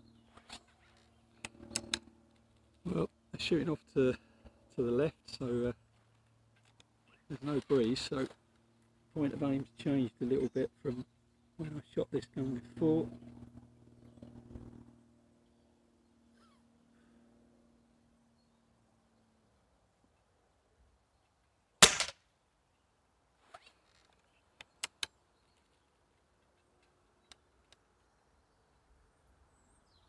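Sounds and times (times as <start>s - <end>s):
rifle lever clicks: 21.8s - 22.1s
air rifle shot: 21.8s - 22.2s.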